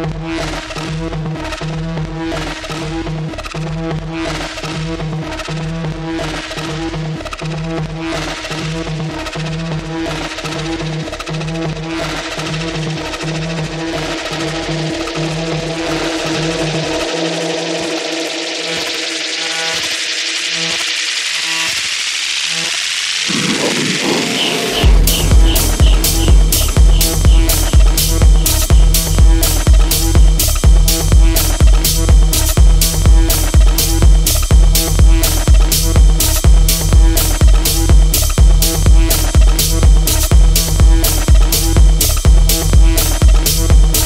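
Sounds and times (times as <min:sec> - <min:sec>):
techno beat with bassline: 0:00.0 - 0:44.0
rising noise sweep: 0:12.2 - 0:31.5.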